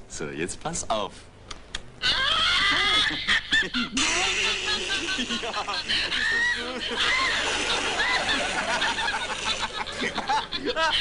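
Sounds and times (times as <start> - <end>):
recorded cackling laughter: 2.0 - 11.0.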